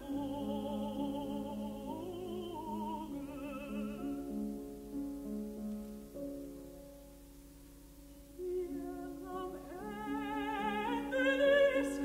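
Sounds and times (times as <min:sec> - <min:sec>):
person singing: 0:00.0 - 0:04.3, 0:08.4 - 0:12.0.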